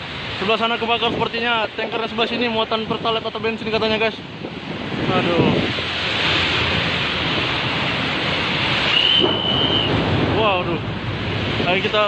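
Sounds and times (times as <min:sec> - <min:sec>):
loud steady rushing noise: 0:00.0 - 0:12.0
high whistle-like tone: 0:08.8 - 0:10.0.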